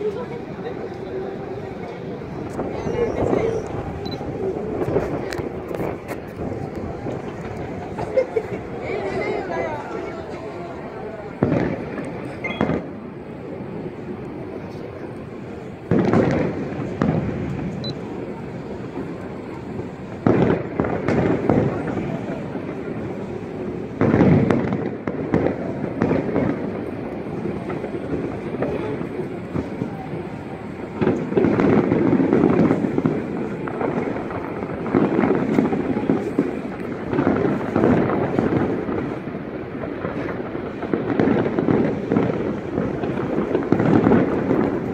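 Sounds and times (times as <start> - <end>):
distant fireworks booming: 0.0 - 44.9.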